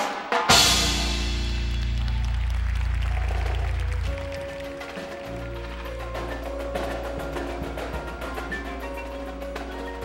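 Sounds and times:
percussion ensemble chords: 0.0 - 10.0.

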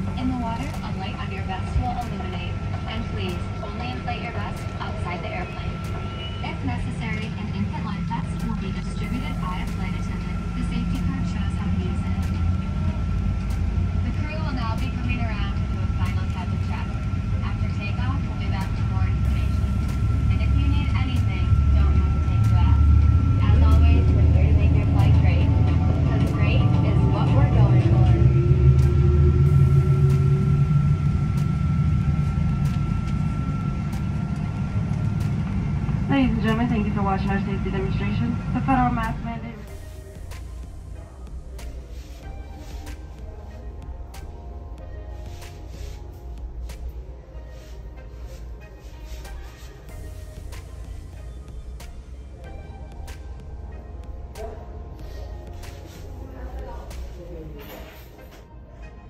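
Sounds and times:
airliner engines rumbling: 0.0 - 57.6
passengers talking indistinctly: 0.0 - 59.0
thin high whine: 2.2 - 43.7.

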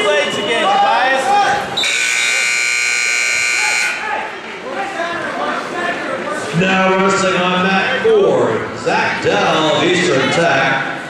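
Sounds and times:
voices: 0.0 - 11.0
scoreboard buzzer tone: 1.8 - 4.0.

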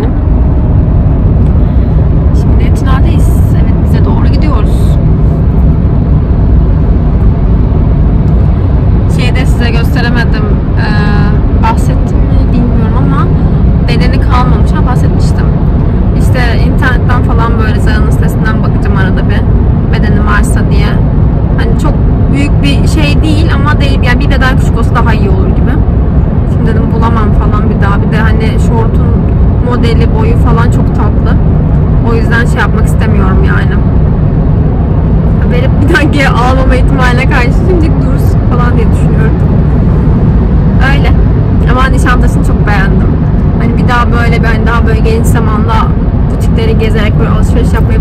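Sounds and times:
car engine and tyre rumble: 0.0 - 48.0.

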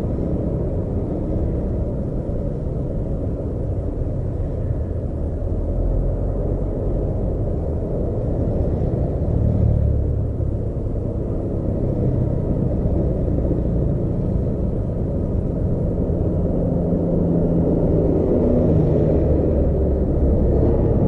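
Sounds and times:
low rumble of road traffic: 0.0 - 21.0
truck engine hum: 0.0 - 21.0.

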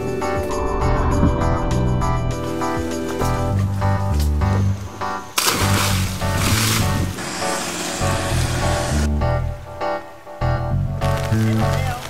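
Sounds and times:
background music with bass line: 0.0 - 12.0
person splashing into water: 5.4 - 7.2.

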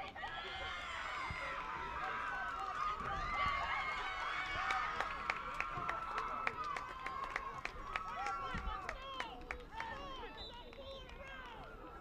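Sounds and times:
players and spectators calling out: 0.0 - 12.0.

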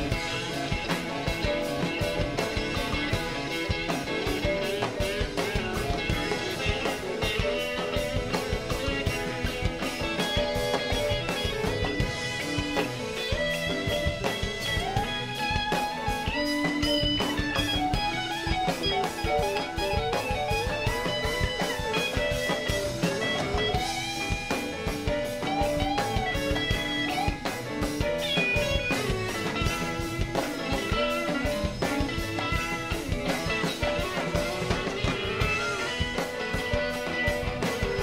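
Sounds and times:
drum kit beat: 0.0 - 38.0
electric guitar bending notes: 0.0 - 38.0.

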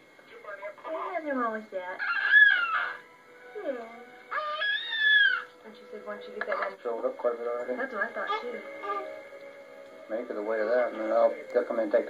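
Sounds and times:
newborn baby crying: 2.0 - 3.1, 4.3 - 5.6.

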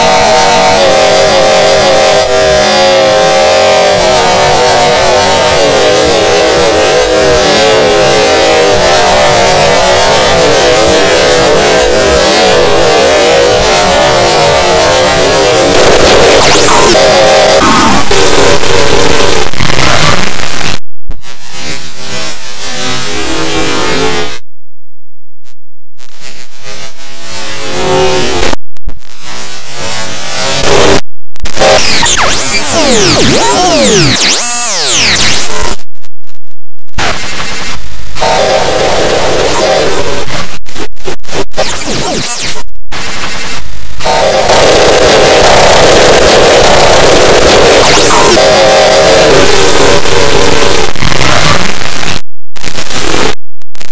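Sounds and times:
harsh distorted music: 0.0 - 24.4, 26.0 - 53.9
static-like noise: 0.0 - 24.4, 25.4 - 53.9.

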